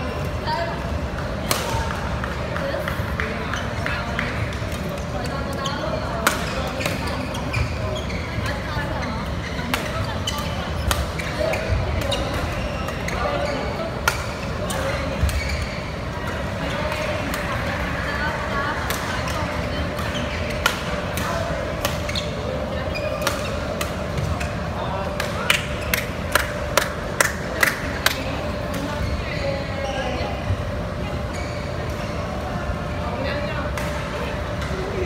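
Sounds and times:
murmur of voices: 0:00.0 - 0:35.0.

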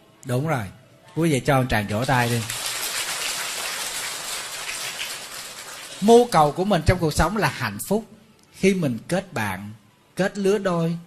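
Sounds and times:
audience applauding: 0:01.9 - 0:06.6.

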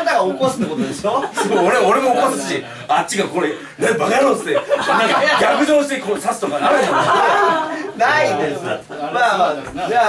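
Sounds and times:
men talking: 0:00.0 - 0:10.0
men laughing: 0:00.4 - 0:02.7, 0:03.7 - 0:09.4.

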